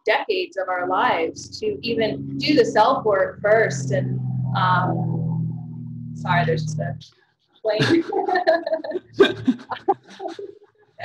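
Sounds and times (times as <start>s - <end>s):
people laughing on video call: 7.7s - 10.6s.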